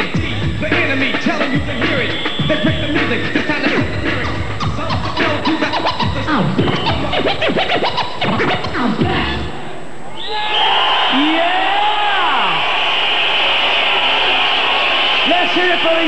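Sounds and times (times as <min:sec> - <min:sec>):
heavy bass beat: 0:00.0 - 0:09.5
vinyl record scratching: 0:00.0 - 0:09.5
audience cheering and shouting: 0:09.8 - 0:16.0.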